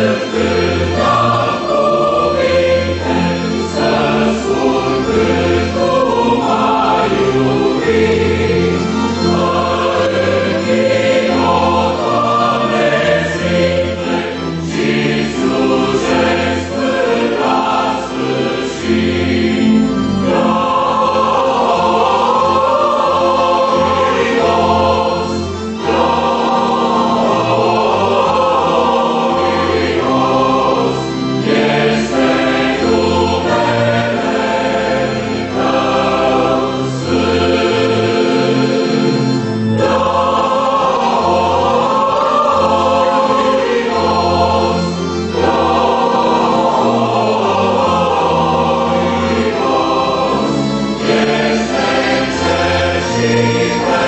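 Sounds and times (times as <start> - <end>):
mixed choir singing a hymn: 0.0 - 54.0.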